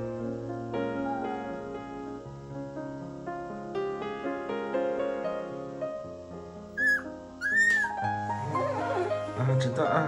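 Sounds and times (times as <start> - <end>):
soft piano music: 0.0 - 10.0
puppy whimpering: 6.8 - 8.0.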